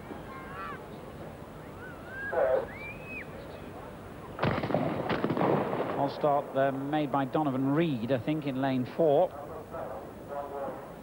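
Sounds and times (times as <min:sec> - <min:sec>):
hushed stadium crowd: 0:00.0 - 0:04.4
starter's pistol firing: 0:04.4 - 0:06.0.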